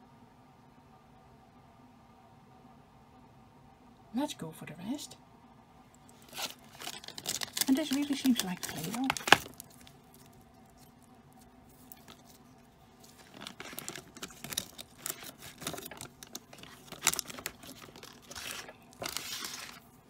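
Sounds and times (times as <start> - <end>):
plastic packaging crinkling: 6.0 - 20.0.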